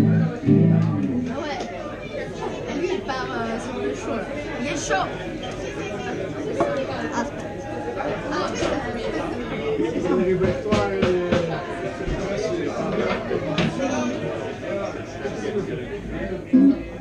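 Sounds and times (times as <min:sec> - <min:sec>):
audience chatter: 0:00.0 - 0:17.0.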